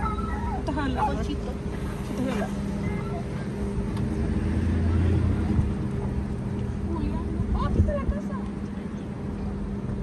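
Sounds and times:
truck engine running: 0:00.0 - 0:10.0.

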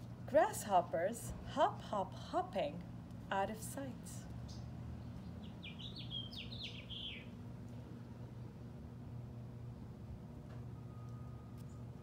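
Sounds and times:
songbird singing: 0:04.4 - 0:07.4.

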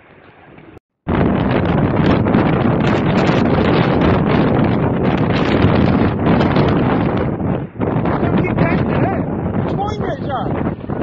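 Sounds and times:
strong wind buffeting microphone: 0:00.7 - 0:11.0.

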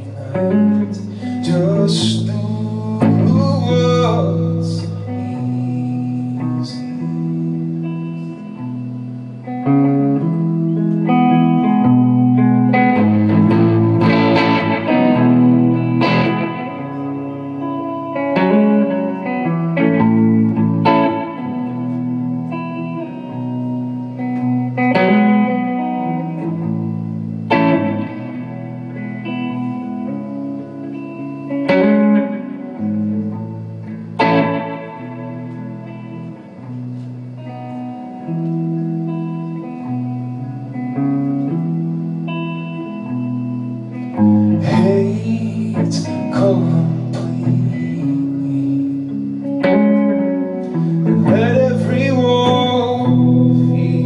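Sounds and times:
electric guitar chords and notes: 0:00.0 - 0:54.0.

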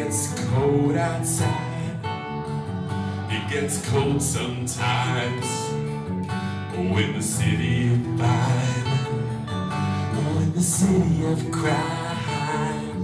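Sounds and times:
man singing: 0:00.0 - 0:02.4, 0:03.1 - 0:13.0
strummed acoustic guitar: 0:00.0 - 0:13.0.

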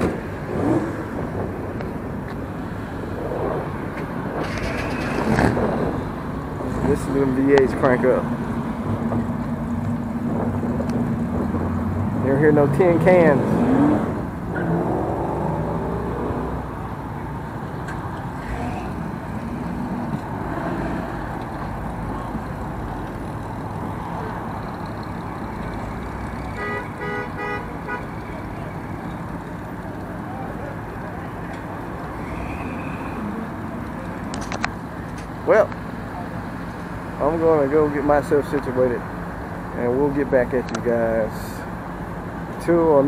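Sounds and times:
car engines rumbling: 0:00.0 - 0:43.0
car horn toots: 0:26.4 - 0:28.3.

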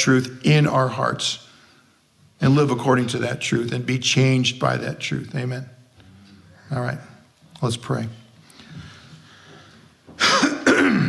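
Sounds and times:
man clearing his throat: 0:10.2 - 0:11.0.

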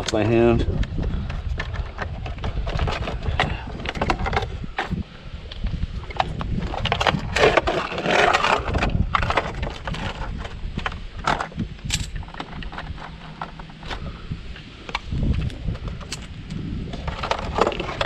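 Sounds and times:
plastic casing clattering: 0:06.1 - 0:14.1.

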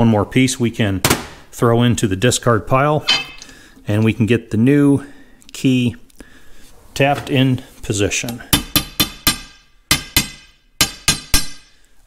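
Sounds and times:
hammer tapping steel: 0:03.0 - 0:03.5.

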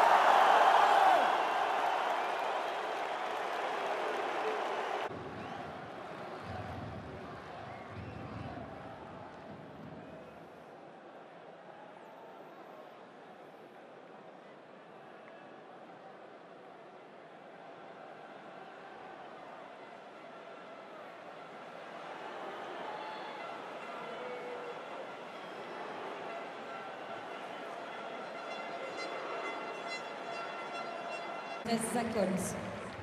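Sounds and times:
stadium crowd voices: 0:00.0 - 0:33.0.

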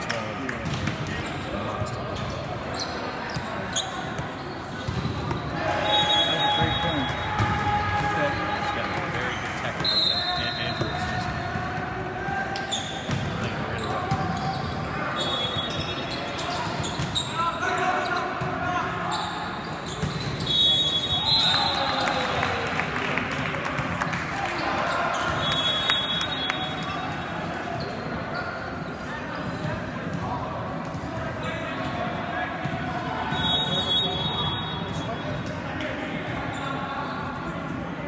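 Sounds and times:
chatter of players and spectators: 0:00.0 - 0:38.0.

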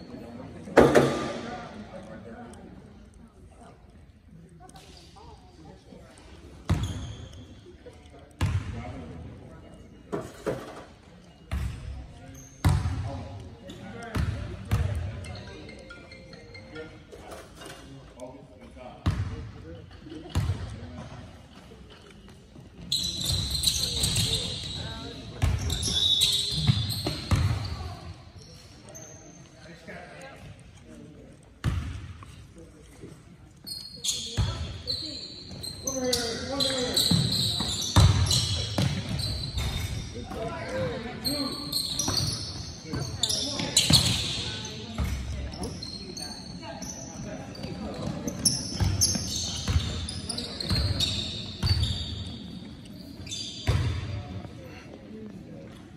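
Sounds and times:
sneakers squeaking: 0:04.8 - 0:18.1, 0:19.0 - 0:55.9.

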